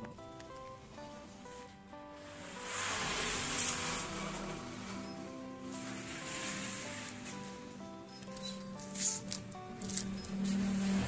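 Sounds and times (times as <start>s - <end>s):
simple melody of short notes: 0.0s - 11.0s.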